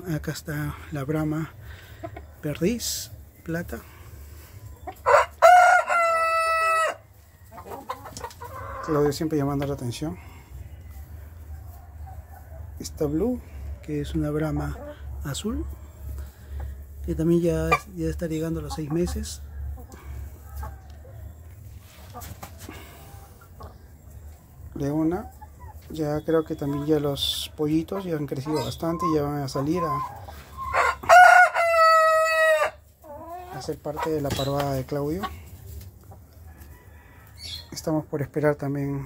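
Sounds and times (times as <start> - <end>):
hens clucking softly: 0.6 - 2.8, 3.5 - 38.0
rooster crowing: 5.1 - 7.0, 30.7 - 32.8
steady low hum: 9.8 - 25.0.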